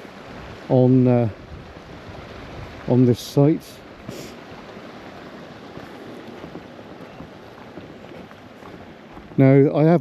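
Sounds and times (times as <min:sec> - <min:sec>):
wind noise on microphone: 0:00.0 - 0:03.2
footsteps on grass: 0:01.6 - 0:10.0.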